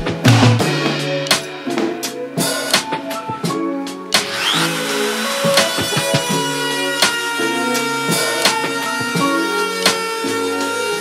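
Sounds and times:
background music with drums: 0.0 - 11.0
router motor whining: 4.2 - 11.0.

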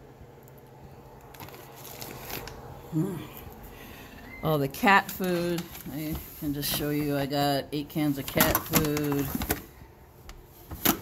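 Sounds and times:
plastic bags rustling: 1.2 - 11.0.

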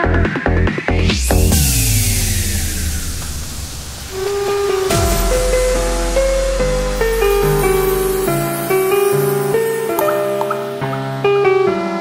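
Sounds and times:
held low bass: 0.6 - 9.6
white-noise sweep: 0.8 - 10.0
gliding pitched tones: 1.0 - 11.2.

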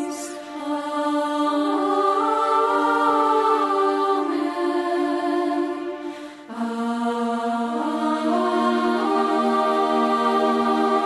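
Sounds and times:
women singing sacred song: 0.0 - 11.0.

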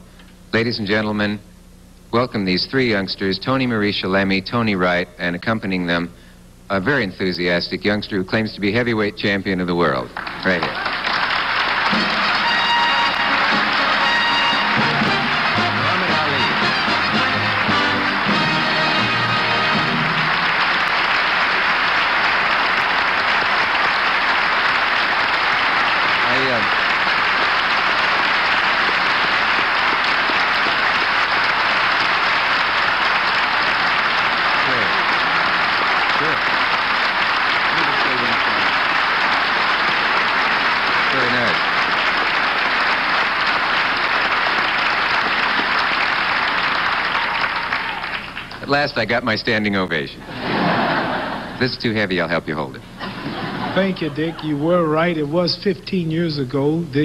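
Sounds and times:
audience applause: 10.2 - 48.7, 50.3 - 51.7
band music: 11.8 - 20.8.

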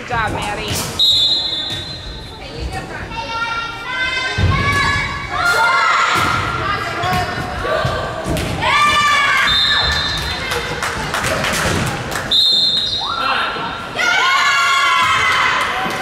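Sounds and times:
shoe squeaks: 0.9 - 2.4.

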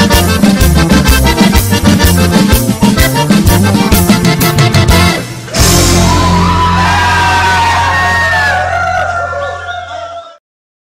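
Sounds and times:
band holding final chord: 3.2 - 8.2
whoops and shouts: 5.9 - 10.4.

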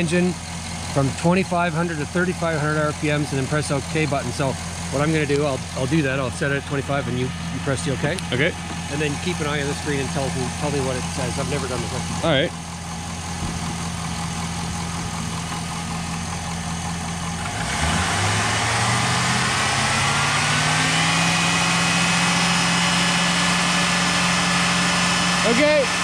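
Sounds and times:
car engine idling and revving: 0.0 - 26.0.

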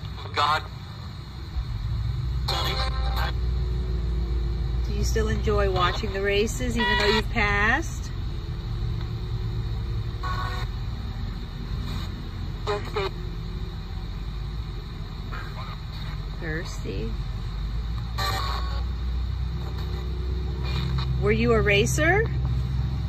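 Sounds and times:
clipped broadcast voice fragments: 0.0 - 1.0, 2.3 - 3.5, 4.9 - 8.1, 10.1 - 13.4, 15.1 - 17.2, 19.5 - 22.4
radio static hissing: 0.0 - 23.0.

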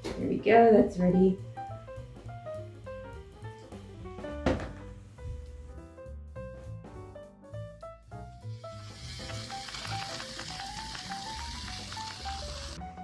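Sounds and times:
light background music: 0.0 - 13.0
food sizzling in a frying pan: 8.4 - 12.8.

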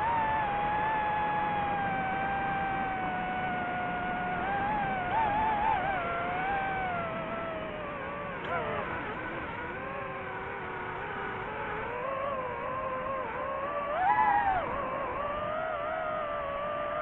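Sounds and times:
drone propellers whining: 0.0 - 17.0.

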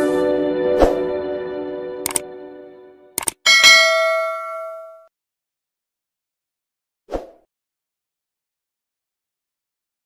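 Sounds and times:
button clicks: 3.2 - 3.5
bright bell ding: 3.5 - 5.1.

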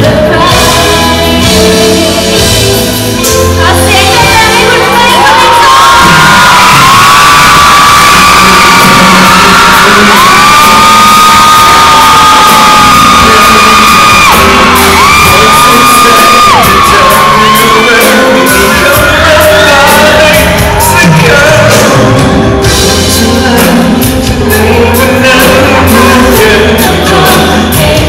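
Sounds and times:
live pop band with singer: 0.0 - 28.0
people shouting: 4.8 - 19.8.

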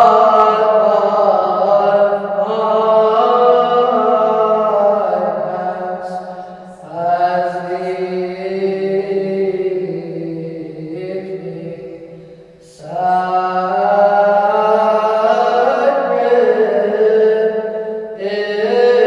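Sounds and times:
person chanting: 0.0 - 19.0.

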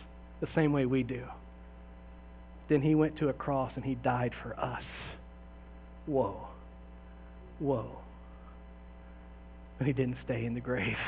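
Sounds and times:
electrical mains hum: 0.0 - 11.0
man talking: 0.4 - 1.4, 2.7 - 5.2, 6.0 - 6.7, 7.5 - 8.2, 9.8 - 11.0.

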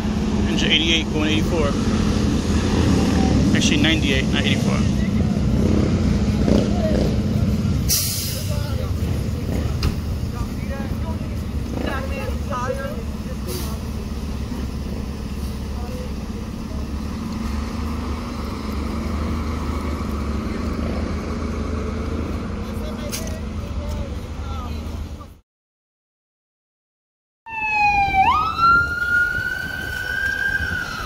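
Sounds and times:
diesel engine rumbling: 0.0 - 25.4, 27.5 - 31.0.

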